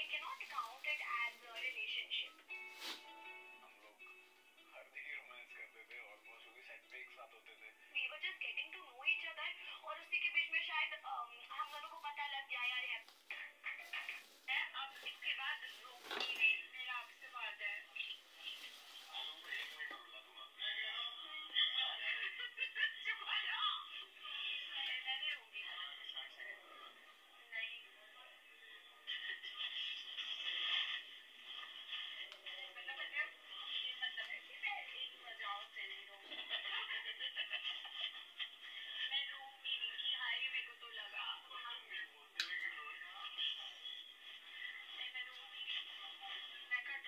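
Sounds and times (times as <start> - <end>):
music from phone speaker: 1.7 - 6.7.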